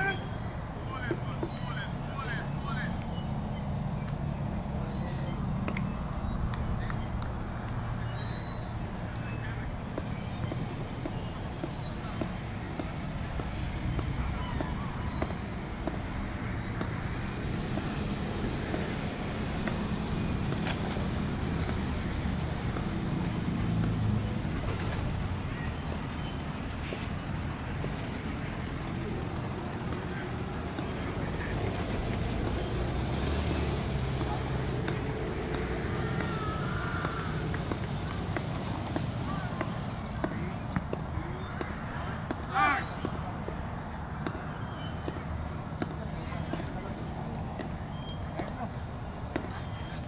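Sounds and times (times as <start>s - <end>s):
distant traffic: 0.0s - 50.0s.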